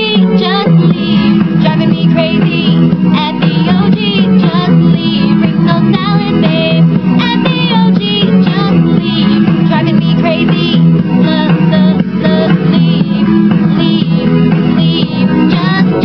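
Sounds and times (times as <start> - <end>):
electronic backing track: 0.0 - 16.0
woman singing: 0.0 - 16.0.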